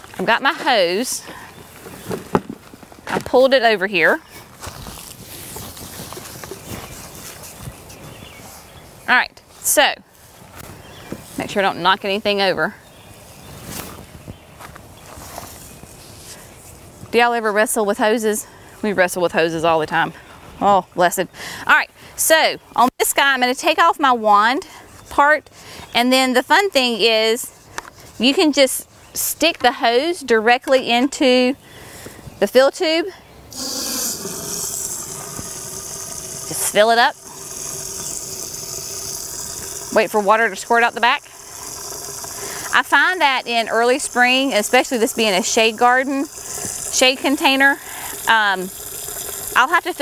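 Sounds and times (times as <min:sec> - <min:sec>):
garden hose handling: 0:00.0 - 0:08.1, 0:33.5 - 0:50.0
footsteps on pine straw: 0:04.4 - 0:08.7.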